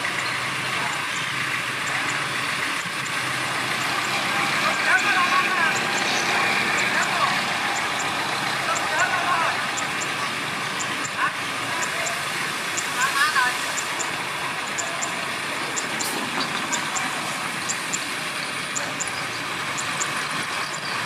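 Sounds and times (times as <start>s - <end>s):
bulldozer running: 0.0s - 21.0s
dump truck diesel engine running: 0.0s - 21.0s.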